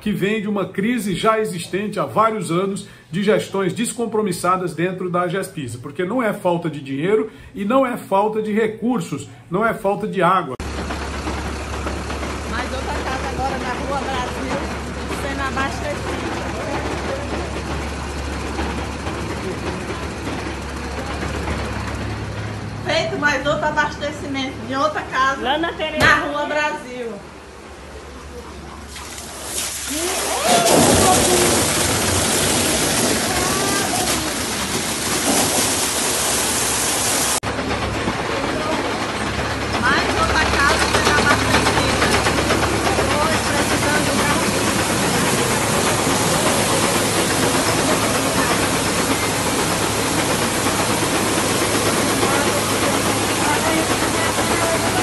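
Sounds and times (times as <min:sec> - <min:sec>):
people talking: 0:00.0 - 0:10.6, 0:12.5 - 0:17.7, 0:22.8 - 0:27.2, 0:29.9 - 0:32.0, 0:33.0 - 0:34.7, 0:38.2 - 0:55.0
diesel truck engine running: 0:10.5 - 0:26.7, 0:29.9 - 0:55.0
water gushing from hose into tank: 0:28.9 - 0:37.4, 0:40.0 - 0:55.0.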